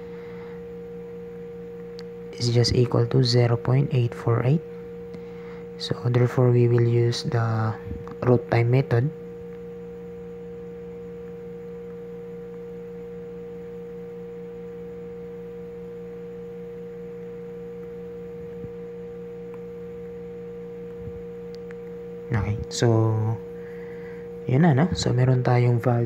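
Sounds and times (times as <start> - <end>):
steady hum: 0.0 - 26.0.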